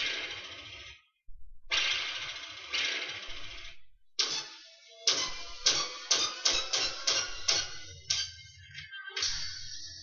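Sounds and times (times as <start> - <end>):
noisy hits: 1.4 - 4.4.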